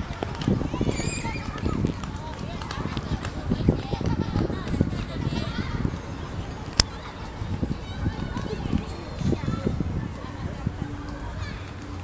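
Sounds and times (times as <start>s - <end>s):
children's shrill calls: 0.6s - 1.9s.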